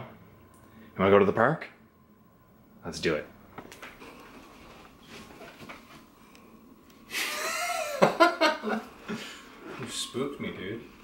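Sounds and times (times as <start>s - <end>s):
faint rustles: 3.7s - 6.6s.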